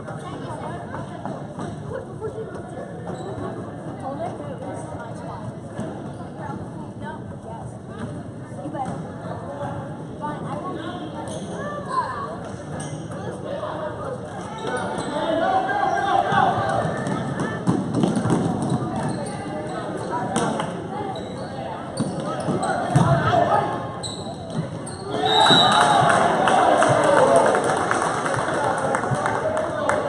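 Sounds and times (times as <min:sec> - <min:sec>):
spectators' voices and shouts: 0:13.2 - 0:24.0, 0:24.6 - 0:30.0
basketball bouncing on gym floor: 0:17.0 - 0:19.2.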